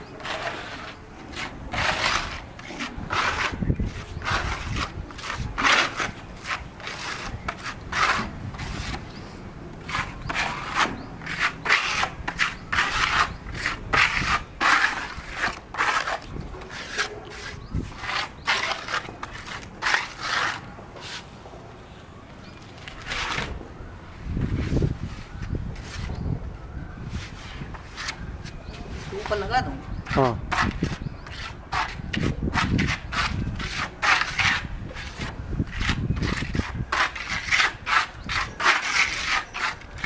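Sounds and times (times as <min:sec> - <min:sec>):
trowels scraping paste on tiles: 0:00.0 - 0:21.3, 0:22.8 - 0:23.6, 0:27.2 - 0:40.0.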